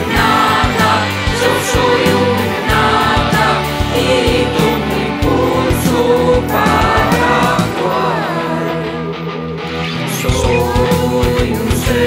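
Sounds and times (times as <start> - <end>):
instrumental backing with drumbeat: 0.0 - 7.9
voices singing together: 0.0 - 12.0.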